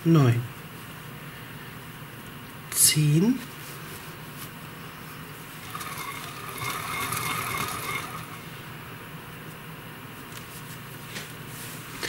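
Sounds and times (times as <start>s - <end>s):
steady low hum: 0.0s - 12.0s
machine-like whine: 5.6s - 8.8s.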